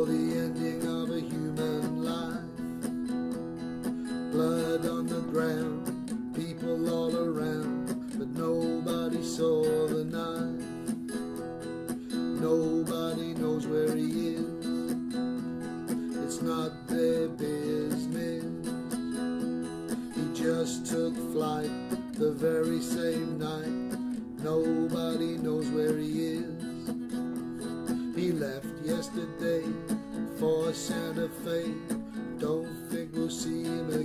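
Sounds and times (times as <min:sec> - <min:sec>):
acoustic guitar strumming chords: 0:00.0 - 0:34.0.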